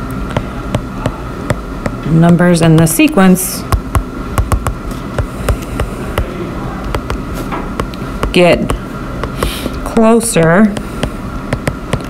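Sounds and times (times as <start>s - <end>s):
steady background hum: 0.0s - 12.0s
stylus tapping tablet screen: 3.7s - 6.3s, 6.9s - 9.7s, 10.4s - 12.0s.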